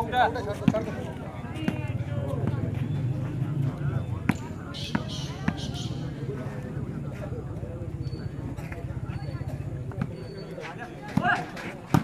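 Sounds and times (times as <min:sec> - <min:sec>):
ball bouncing on dirt court: 0:00.0 - 0:12.0
crowd voices: 0:00.0 - 0:12.0.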